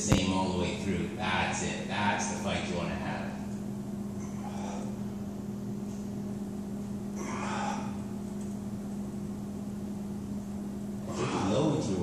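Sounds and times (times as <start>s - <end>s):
low machine hum: 0.0s - 12.0s.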